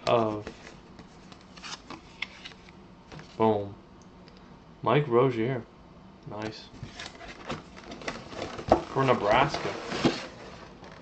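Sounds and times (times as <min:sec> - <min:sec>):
cardboard box flaps rustling: 0:06.9 - 0:10.8.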